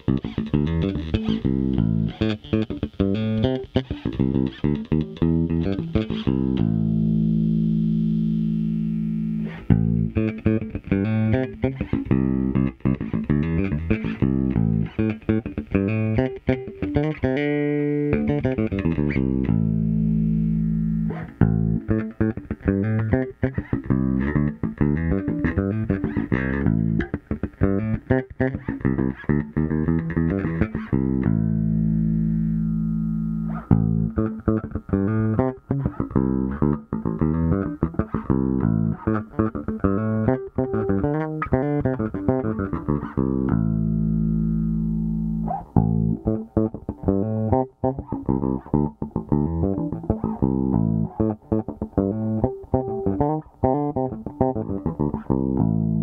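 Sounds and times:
bass guitar played fingerstyle: 0.0s - 56.0s.

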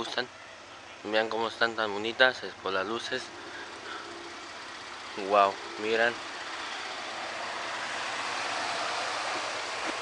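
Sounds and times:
suv engine idling: 0.0s - 10.0s.

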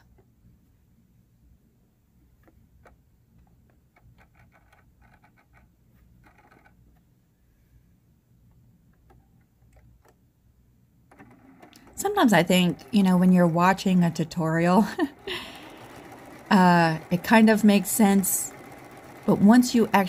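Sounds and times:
sewing machine stitching: 2.4s - 6.8s, 11.1s - 20.0s.

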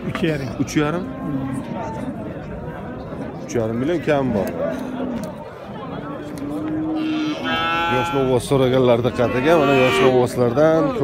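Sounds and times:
calf mooing: 6.9s - 8.4s, 9.2s - 10.2s.

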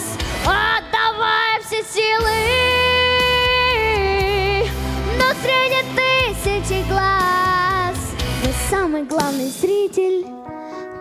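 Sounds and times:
backing track: 0.0s - 11.0s
boy singing a ballad: 0.0s - 11.0s.

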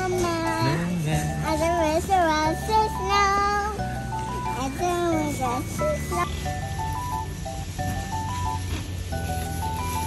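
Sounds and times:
child's high-pitched voice: 0.0s - 0.8s, 1.4s - 6.4s
background music with bass: 0.0s - 10.0s.

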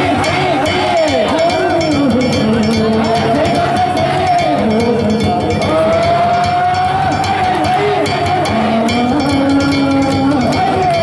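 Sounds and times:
percussion strikes: 0.0s - 11.0s
person singing long notes: 0.0s - 11.0s.

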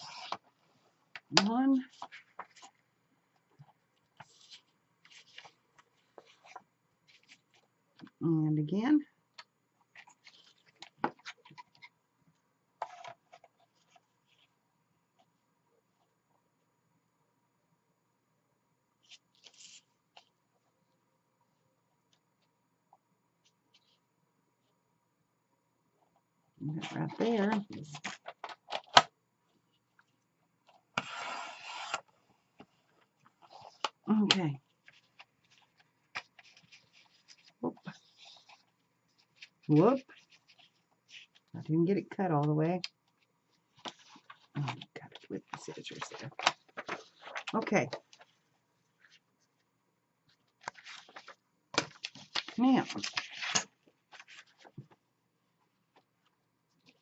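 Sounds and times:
paper rustles: 1.8s - 2.8s, 3.6s - 8.1s, 9.9s - 11.9s, 34.7s - 41.5s, 43.1s - 49.6s, 50.3s - 55.0s
clicks and taps of handling paper: 50.3s - 55.0s.

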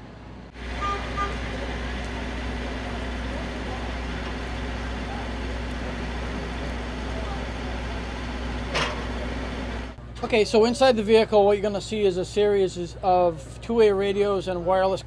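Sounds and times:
heavy vehicle engine humming: 0.0s - 15.0s.

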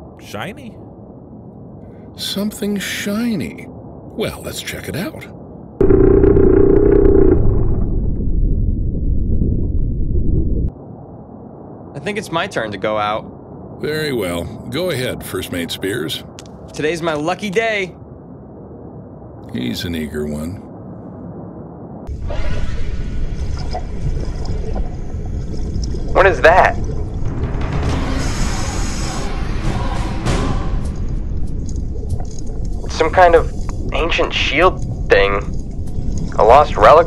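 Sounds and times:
deep underwater rumble: 5.4s - 13.8s, 18.0s - 19.7s, 20.5s - 37.0s.

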